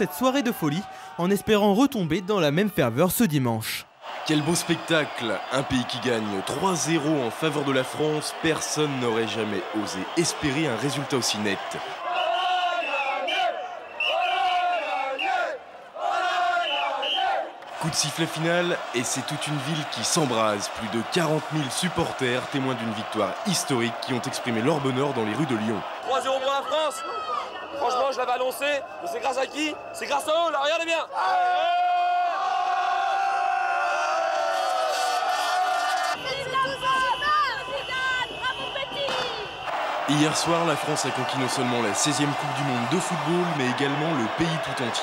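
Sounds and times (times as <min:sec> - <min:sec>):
crowd chanting in unison: 0:03.9 - 0:27.9, 0:31.2 - 0:45.0.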